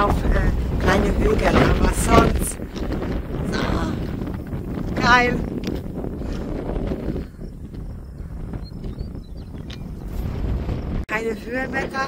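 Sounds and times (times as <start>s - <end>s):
strong wind buffeting microphone: 0.0s - 12.0s.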